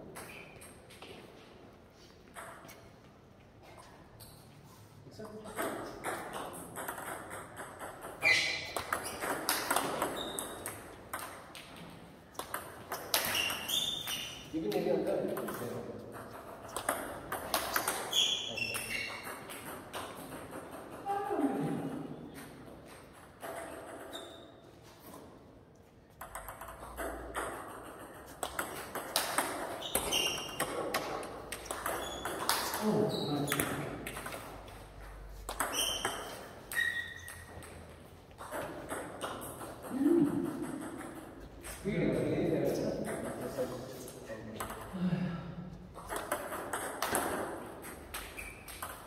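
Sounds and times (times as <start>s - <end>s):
table tennis balls clicking: 5.5s - 21.1s, 26.1s - 41.8s, 44.5s - 45.0s, 45.9s - 49.0s
short high squeaks: 8.2s - 9.3s, 13.2s - 14.5s, 18.0s - 19.3s, 24.1s - 24.7s, 29.8s - 30.6s, 35.6s - 37.6s.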